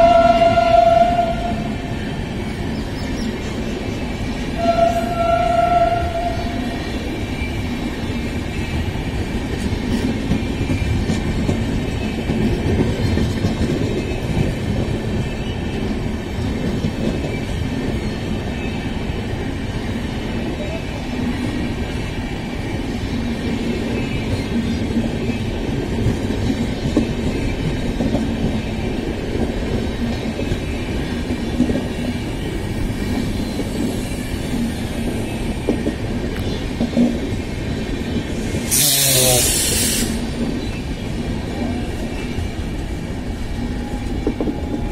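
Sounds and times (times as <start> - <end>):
train wheels rumbling on rail: 0.0 - 44.9.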